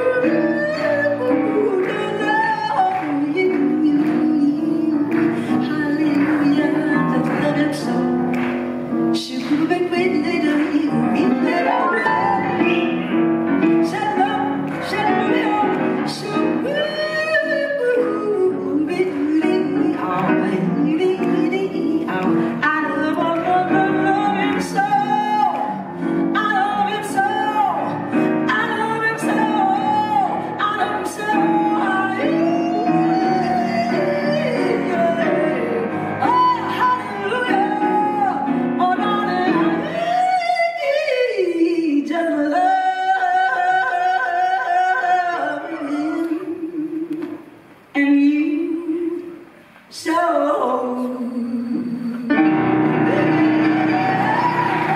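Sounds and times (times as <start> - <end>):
grand piano: 0.0 - 54.9
woman singing jazz: 0.0 - 54.9.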